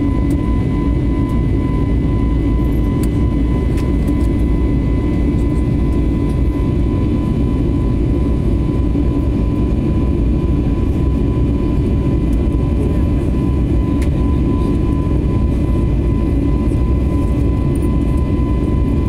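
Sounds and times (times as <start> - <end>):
jet cabin low rumble: 0.0 - 19.0
jet engine high whine: 0.0 - 19.0.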